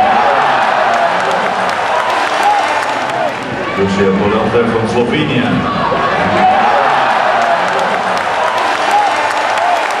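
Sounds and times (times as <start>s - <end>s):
crowd applauding: 0.0s - 3.8s, 6.1s - 10.0s.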